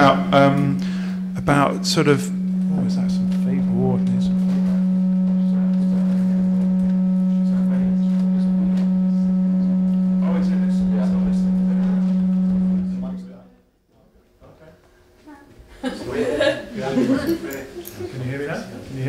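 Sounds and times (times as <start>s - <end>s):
loud low hum-like tone: 0.0s - 13.7s.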